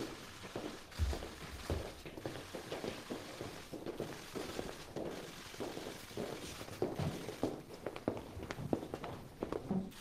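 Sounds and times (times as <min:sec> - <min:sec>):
footsteps on hard floor: 0:00.0 - 0:10.0.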